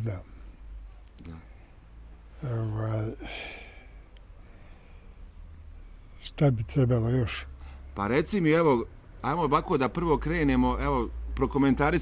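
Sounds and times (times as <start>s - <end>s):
breathy sigh: 3.2s - 5.2s.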